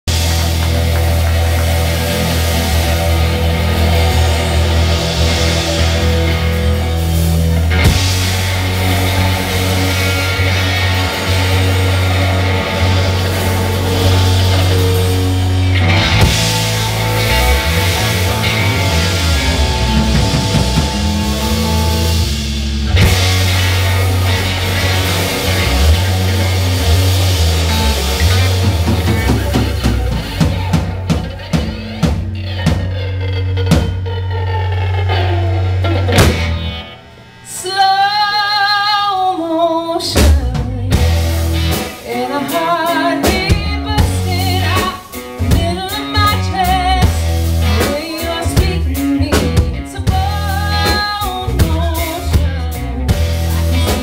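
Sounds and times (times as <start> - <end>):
drums: 0.0 - 54.0
electric guitars: 0.0 - 54.0
heavy sustained bass line: 0.1 - 31.5.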